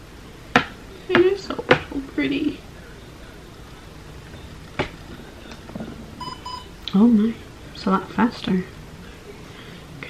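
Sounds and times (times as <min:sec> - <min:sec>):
short electronic beeps: 0:06.2 - 0:06.8.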